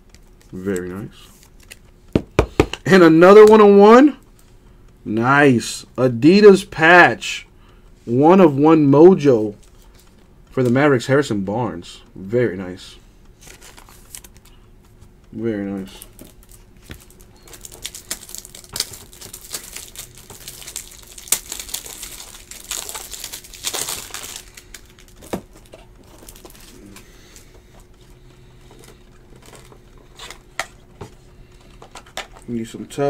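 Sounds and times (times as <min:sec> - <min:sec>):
plastic packaging crinkling: 0:13.4 - 0:14.6, 0:15.8 - 0:30.9.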